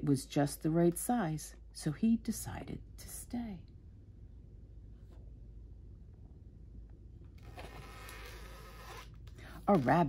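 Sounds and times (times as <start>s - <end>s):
low hum: 0.0s - 9.9s
book page turning: 7.3s - 10.0s.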